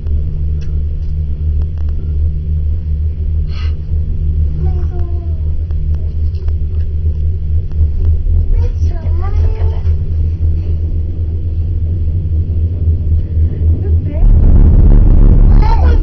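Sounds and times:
gondola cabin rumble: 0.0s - 16.0s
young child vocalizing: 15.4s - 16.0s.

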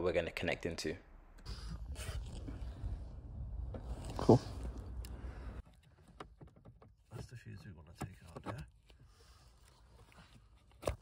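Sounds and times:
steady low rumble: 0.0s - 5.6s.

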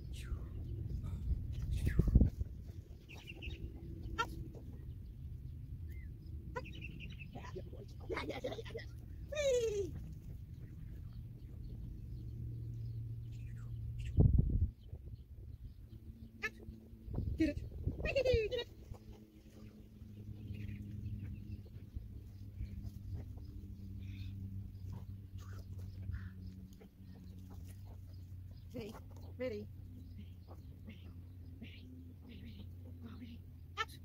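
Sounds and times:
low hum: 0.0s - 34.0s
animal crying: 4.1s - 4.5s.

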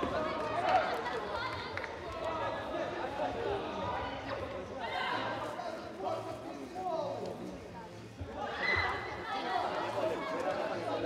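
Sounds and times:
voices in a sports hall: 0.0s - 11.0s.

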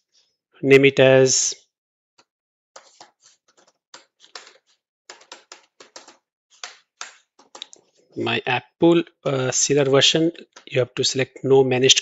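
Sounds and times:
keyboard typing: 2.8s - 7.8s.

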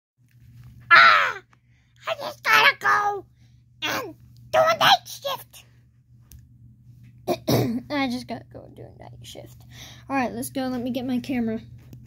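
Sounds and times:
faint low hum: 0.2s - 12.0s
harsh caw-like cry: 0.9s - 1.5s.

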